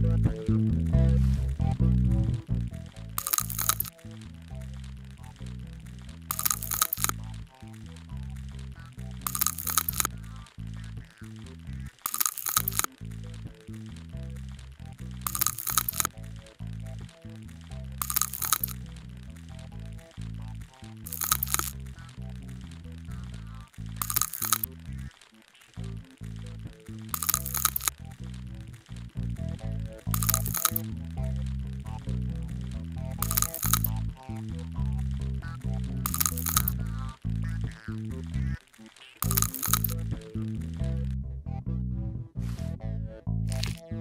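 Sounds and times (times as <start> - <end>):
background music with bass line: 0.0 - 25.1, 25.8 - 44.0
sharp crackling bursts: 0.5 - 41.2, 43.5 - 44.0.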